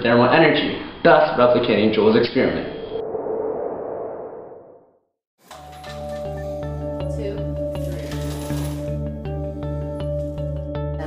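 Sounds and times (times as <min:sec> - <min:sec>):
transition whoosh: 0:02.6 - 0:05.2.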